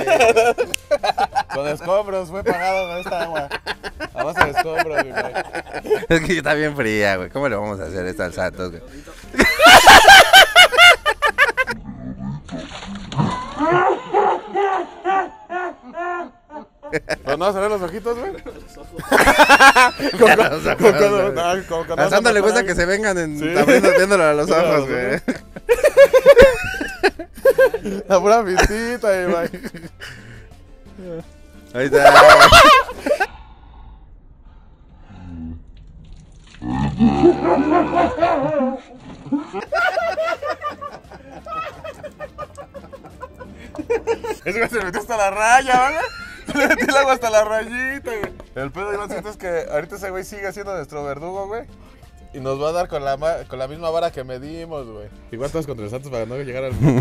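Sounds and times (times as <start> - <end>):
people laughing: 0.0 - 6.4, 9.0 - 11.8, 13.2 - 22.8, 23.4 - 30.4, 31.8 - 33.3, 37.1 - 47.4, 56.7 - 57.0
water pouring and splashing: 12.5 - 13.7, 35.6 - 37.2.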